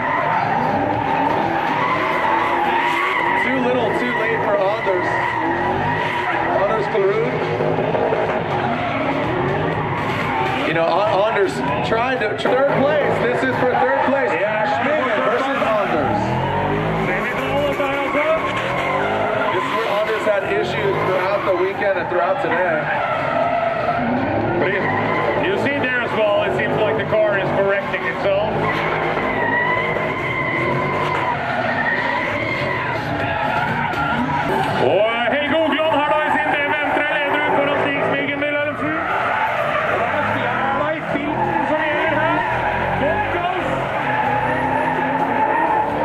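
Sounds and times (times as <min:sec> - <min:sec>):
car engines revving: 0:00.0 - 0:46.0
tyres squealing: 0:00.0 - 0:46.0.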